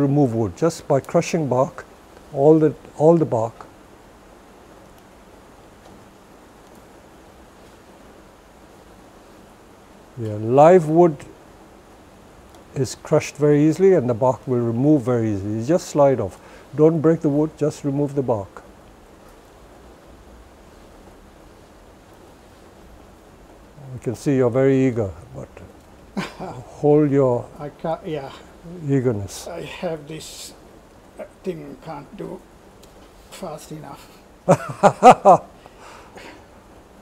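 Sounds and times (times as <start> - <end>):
faint background noise: 0.0 - 37.0
room hiss: 0.0 - 37.0.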